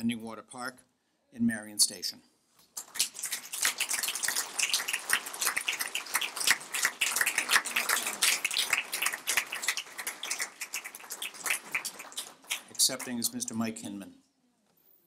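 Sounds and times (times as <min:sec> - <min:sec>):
audience applause: 0:02.8 - 0:13.5.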